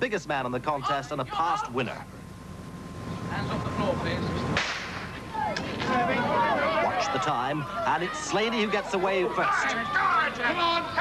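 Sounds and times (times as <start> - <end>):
people shouting: 0.8 - 1.8, 5.2 - 11.0
crowd murmuring: 3.2 - 11.0
starting pistol shot: 4.6 - 5.1.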